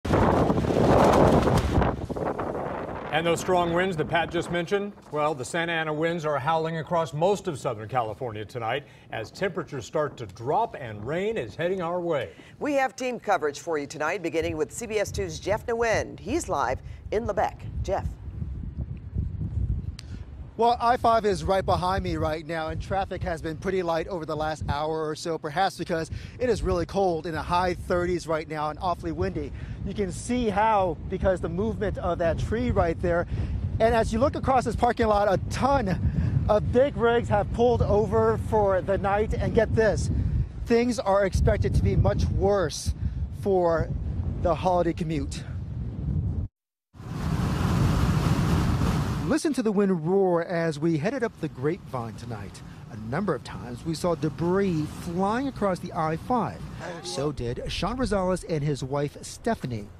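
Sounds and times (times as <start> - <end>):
wind buffeting microphone: 0.0 - 49.4, 51.0 - 59.9.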